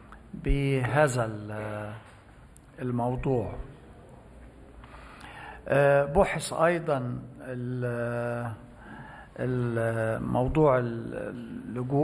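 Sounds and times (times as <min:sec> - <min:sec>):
man speaking: 0:00.4 - 0:02.1, 0:02.8 - 0:03.7, 0:05.7 - 0:08.6, 0:09.4 - 0:12.0.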